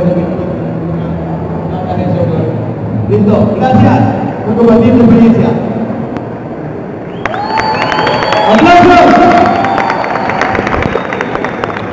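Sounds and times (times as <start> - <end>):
audience clapping: 7.1 - 11.9.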